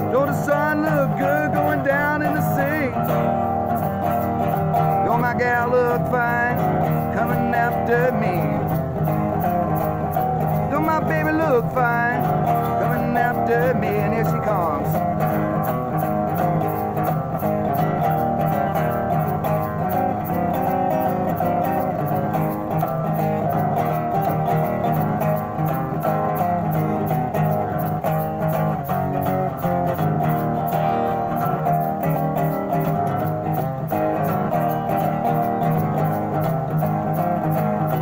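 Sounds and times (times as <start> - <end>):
person singing: 0.0 - 3.6, 4.4 - 15.4
resonator guitar strumming: 0.0 - 38.0.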